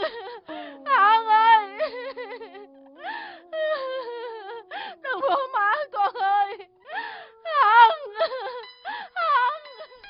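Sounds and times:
woman wailing and sobbing: 0.0s - 10.0s
catches of breath: 3.0s - 3.5s, 6.9s - 7.4s, 8.8s - 9.2s.

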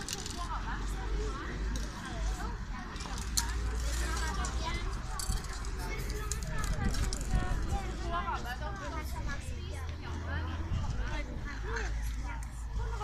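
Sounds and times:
people chatting: 0.0s - 13.0s.

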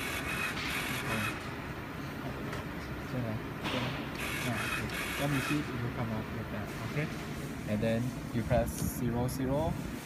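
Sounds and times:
drive motors whirring: 0.0s - 1.5s, 4.1s - 5.8s.

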